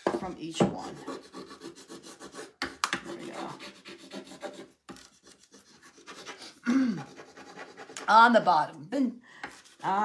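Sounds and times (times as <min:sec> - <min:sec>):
hand tool scraping on wooden board: 0:00.0 - 0:08.4.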